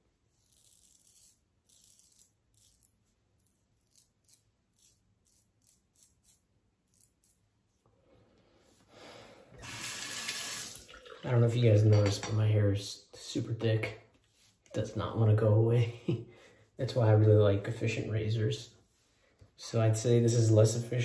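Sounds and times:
razor scraping stubble: 0.3s - 7.5s.

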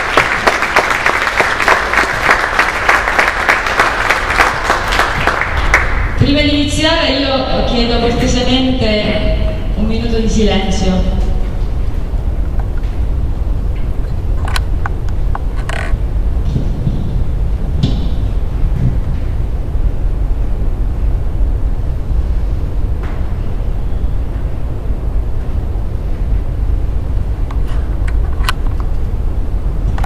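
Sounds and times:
low room noise rumble: 0.0s - 30.0s.

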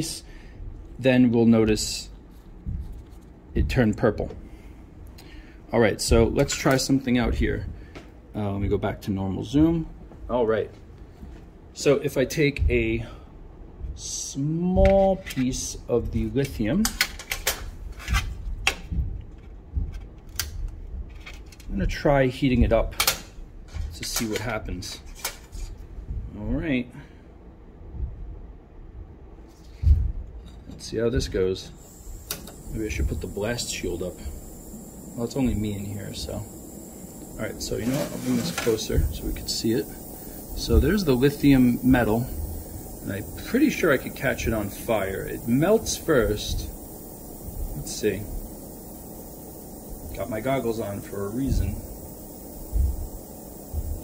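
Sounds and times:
dull low thump: 18.8s - 20.0s, 29.8s - 30.3s, 38.9s - 43.5s, 52.6s - 54.0s
brief hiss: 31.7s - 54.0s.

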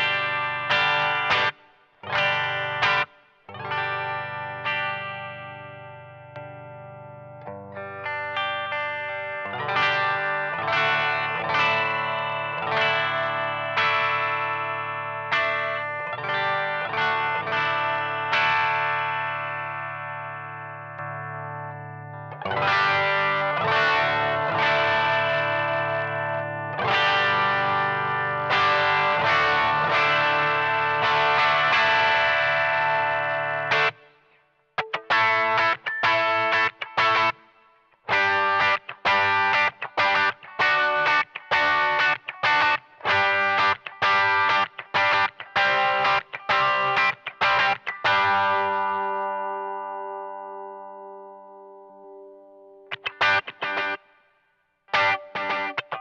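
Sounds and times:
electric guitar chords: 0.0s - 56.0s.

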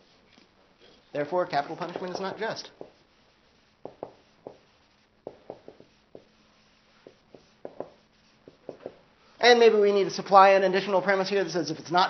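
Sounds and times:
marker writing on whiteboard: 0.8s - 9.1s.

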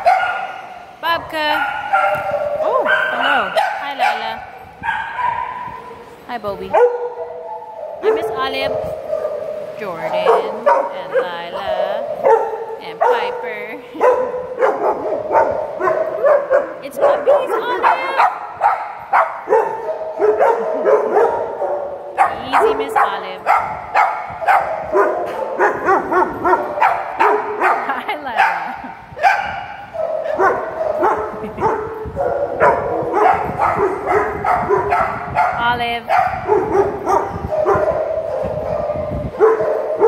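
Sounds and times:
dogs barking: 0.0s - 40.0s.

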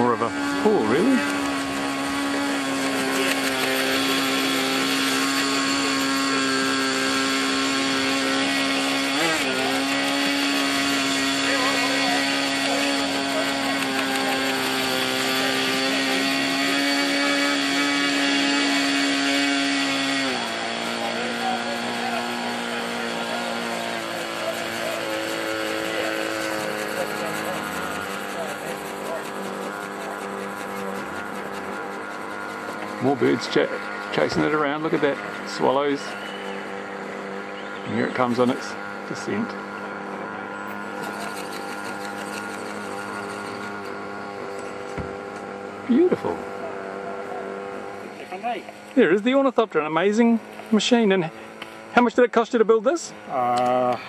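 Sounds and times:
electric motor whine: 0.0s - 54.0s.

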